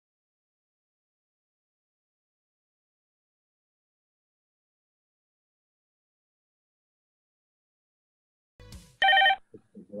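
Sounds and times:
telephone ringing: 9.0s - 9.4s.

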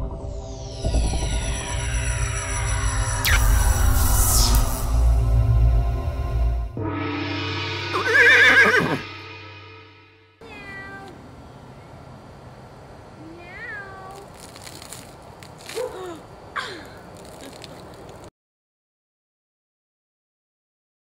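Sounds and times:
electronic music with wavering synth: 0.0s - 10.3s
cat meowing: 10.4s - 11.2s, 13.3s - 14.2s.

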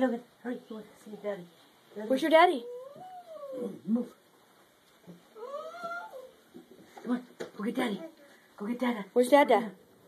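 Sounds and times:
pet's high-pitched cry: 2.6s - 3.8s, 5.4s - 6.4s.

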